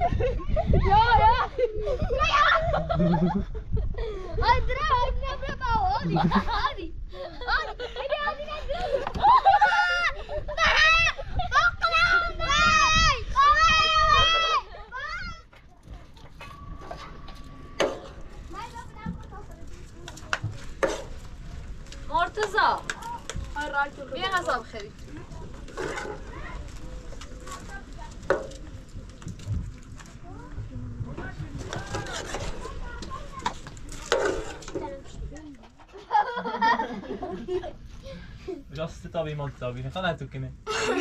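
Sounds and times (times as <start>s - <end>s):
family voices murmuring: 0.0s - 38.7s.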